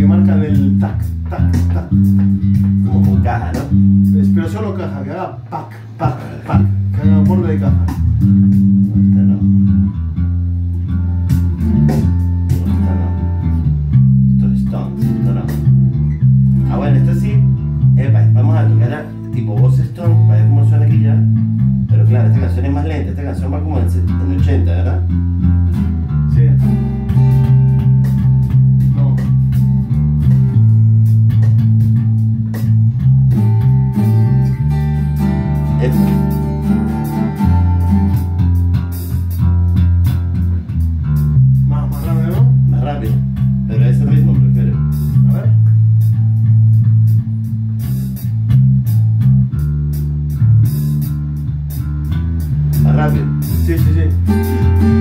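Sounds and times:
guitar strumming chords: 0.0 - 22.7, 23.4 - 55.0
electric bass guitar: 0.0 - 55.0.

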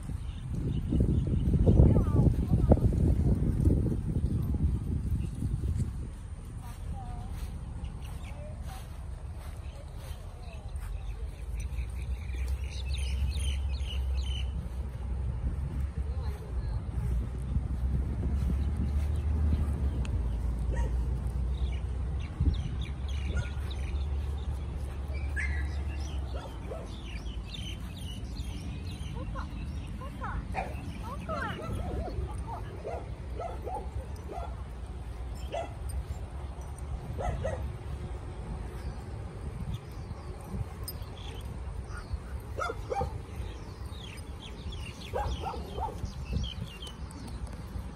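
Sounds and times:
dogs barking and yipping: 20.3 - 21.9, 22.7 - 38.0, 40.4 - 47.2.

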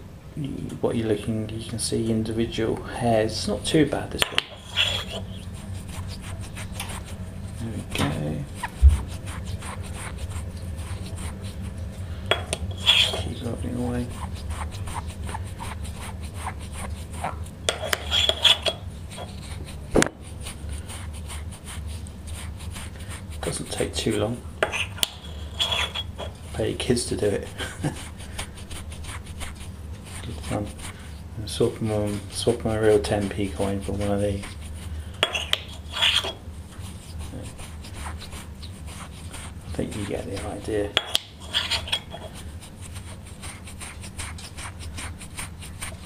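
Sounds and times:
low steady hum: 0.0 - 46.0
gritty scrubbing of a coin: 4.3 - 11.7, 12.6 - 46.0.

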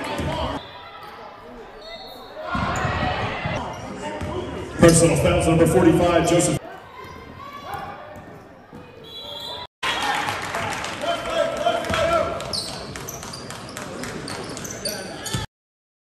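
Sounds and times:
voices of players and spectators: 0.0 - 15.5
sneakers squeaking: 0.1 - 4.5, 6.6 - 9.7, 11.9 - 15.5.

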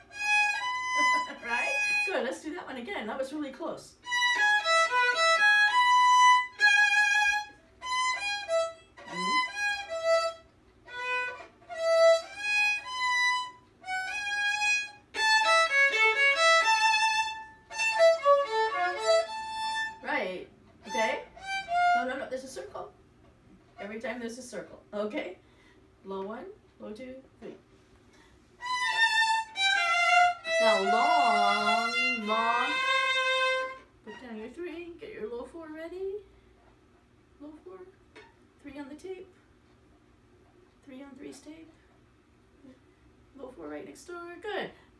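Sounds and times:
violin phrases: 0.0 - 2.8, 4.0 - 22.6, 28.6 - 34.8
low wavering voice: 9.1 - 9.5.

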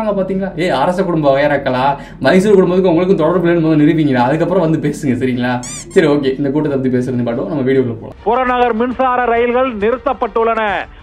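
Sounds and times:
man talking: 0.0 - 8.9
high-pitched squeak: 5.5 - 6.6.

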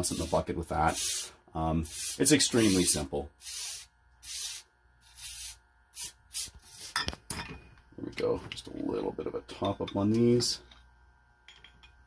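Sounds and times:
gas hissing from bottle neck: 0.0 - 7.1.

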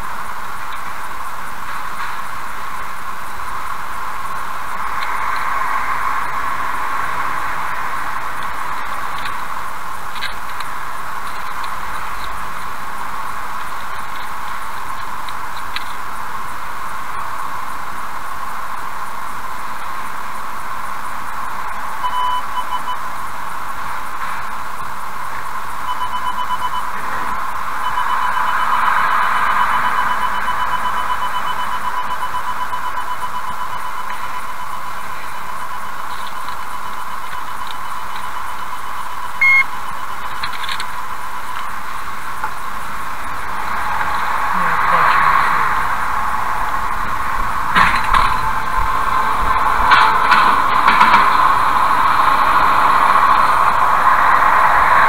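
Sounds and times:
steady hiss: 0.0 - 55.0
electronic beeping: 7.2 - 54.0.

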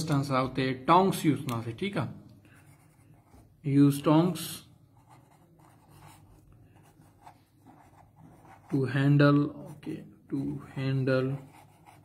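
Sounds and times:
pen scratching on paper: 2.5 - 3.6, 4.9 - 12.0.

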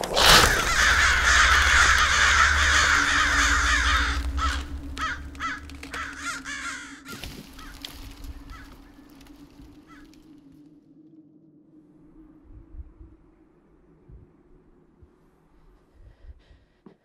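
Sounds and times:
crows cawing: 0.0 - 10.3
low rumble: 0.0 - 16.8
steady low tone: 0.0 - 16.8.

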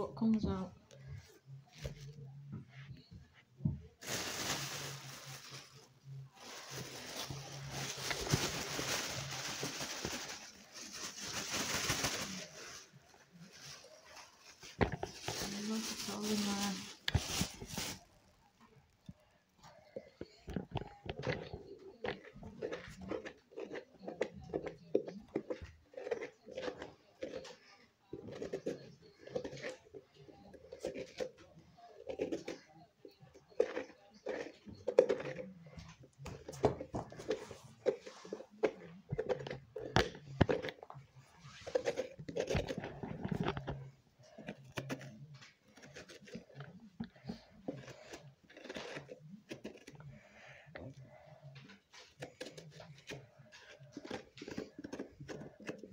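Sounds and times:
plastic bag crinkling: 4.0 - 18.4.

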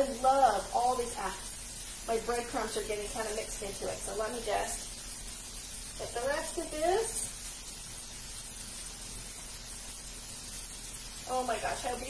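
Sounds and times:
vegetables frying in skillets: 0.0 - 12.0.

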